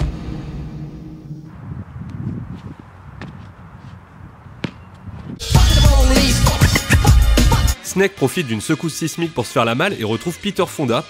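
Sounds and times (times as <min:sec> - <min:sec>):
wind rumble on microphone: 0:00.0 - 0:05.4.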